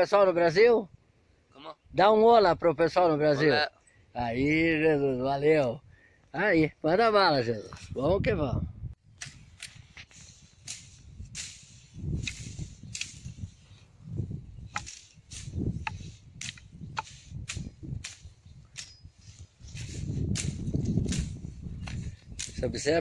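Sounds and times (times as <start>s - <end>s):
rustling vegetation: 9.0s - 23.0s
machete chopping brush: 9.2s - 13.6s, 14.6s - 22.7s.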